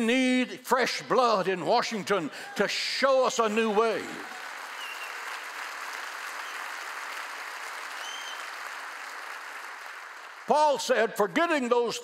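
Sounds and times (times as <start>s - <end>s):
crowd applauding: 3.4s - 11.1s.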